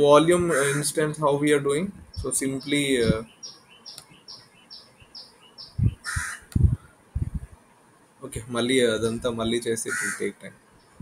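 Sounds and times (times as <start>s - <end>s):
low muffled sounds: 0.0s - 3.3s, 5.8s - 11.0s
bird chirping: 2.0s - 7.0s, 8.9s - 11.0s.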